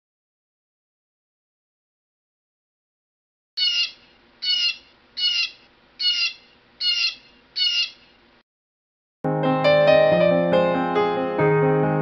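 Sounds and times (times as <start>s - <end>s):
blue jay calling: 3.6s - 8.2s.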